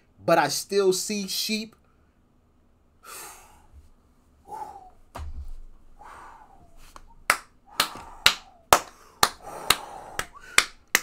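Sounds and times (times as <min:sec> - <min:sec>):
man clapping hands: 0:06.9 - 0:11.0.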